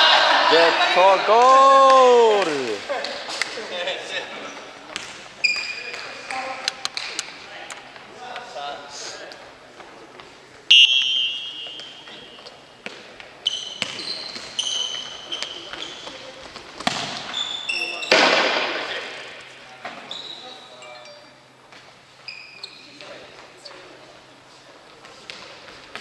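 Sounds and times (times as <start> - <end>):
sneakers squeaking: 4.4 - 7.4, 10.2 - 24.0.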